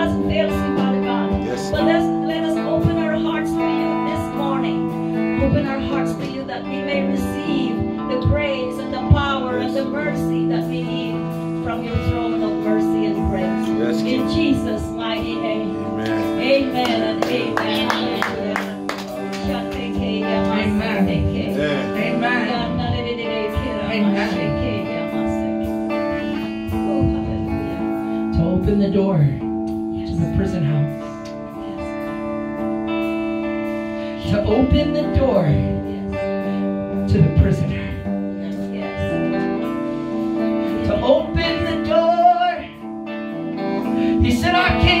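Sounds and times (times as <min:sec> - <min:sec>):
electric guitar strumming: 0:00.0 - 0:45.0
person singing: 0:00.8 - 0:02.2, 0:13.4 - 0:14.5, 0:15.2 - 0:18.6, 0:20.3 - 0:28.3.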